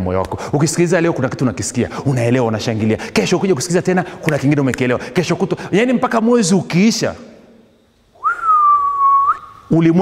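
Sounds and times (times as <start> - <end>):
person whistling: 8.2 - 9.7.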